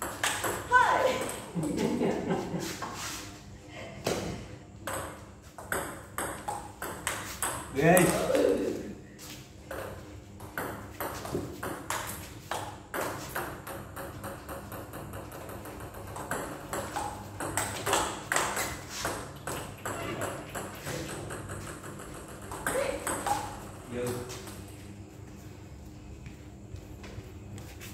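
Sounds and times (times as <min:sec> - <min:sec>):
ball bouncing on table: 0:00.0 - 0:01.5, 0:04.8 - 0:08.4, 0:09.7 - 0:24.6
table tennis balls clicking off paddles: 0:00.0 - 0:01.8, 0:04.8 - 0:08.5, 0:09.7 - 0:24.6.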